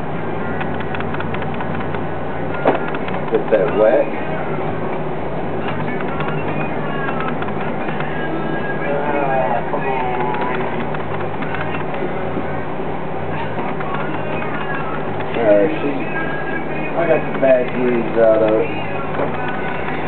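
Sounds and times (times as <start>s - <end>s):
potter's wheel humming: 0.0s - 20.0s.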